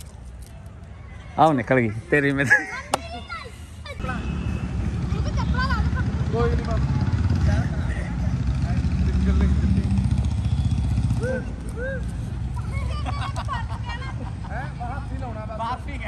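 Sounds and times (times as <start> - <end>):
people calling and shouting: 0.0 - 16.0.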